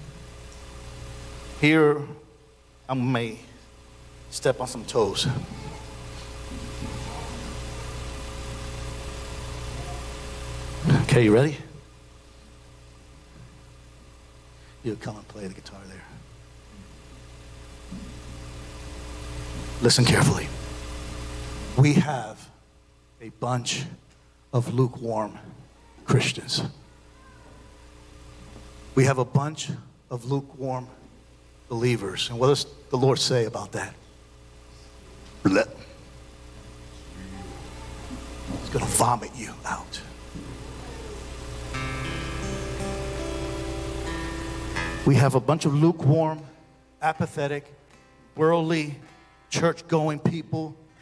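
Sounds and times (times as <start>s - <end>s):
low electrical hum: 0.0s - 51.0s
person preaching: 4.3s - 5.9s, 24.6s - 26.8s, 38.6s - 40.2s, 45.1s - 47.7s, 48.4s - 50.8s
soft sustained instrumental chord: 41.6s - 50.0s.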